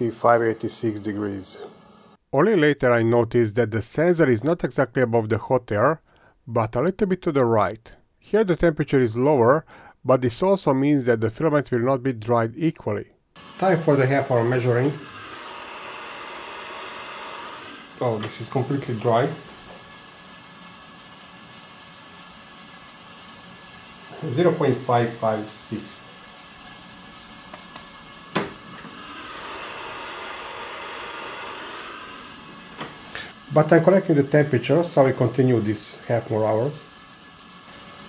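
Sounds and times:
heater fan blowing: 13.4s - 38.0s.

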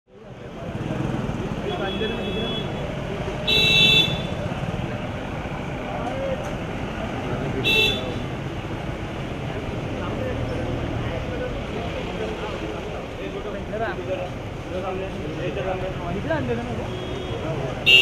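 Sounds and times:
traffic rumble: 0.1s - 18.0s
vehicle horns honking: 1.7s - 4.5s, 7.6s - 8.4s, 16.8s - 18.0s.

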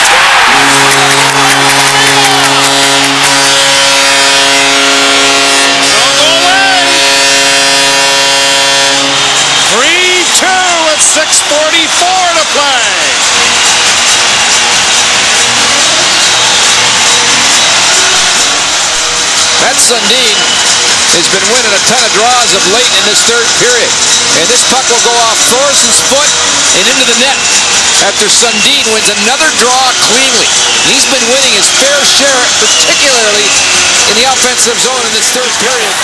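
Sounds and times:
crowd cheering: 0.0s - 36.0s
goal horn low chord: 0.2s - 14.0s.

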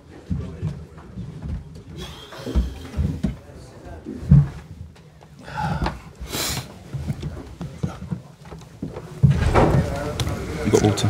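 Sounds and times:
low voices: 5.2s - 11.0s.

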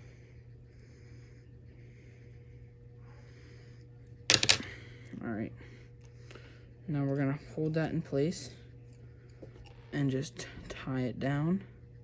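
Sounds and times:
soft breathing: 0.0s - 10.7s
low steady hum: 0.0s - 12.0s.

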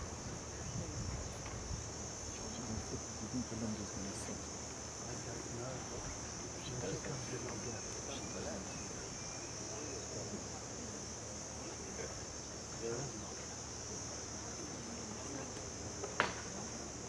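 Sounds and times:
insects trilling: 0.0s - 17.0s
murmur of distant voices: 0.0s - 17.0s.

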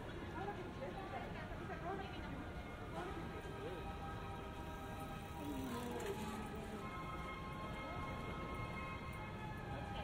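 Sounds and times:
passersby talking: 0.0s - 10.0s.

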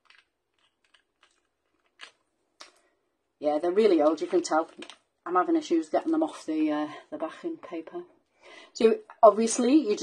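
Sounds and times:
fingernails picking gems off paper: 0.0s - 2.9s.

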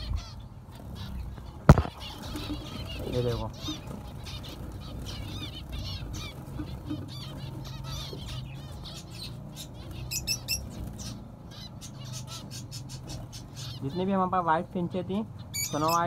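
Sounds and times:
finches chirping: 0.0s - 16.0s
wings fluttering: 0.1s - 11.3s.

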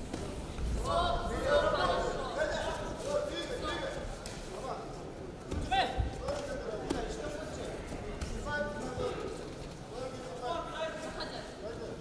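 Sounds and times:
people calling out in a hall: 0.0s - 6.8s.

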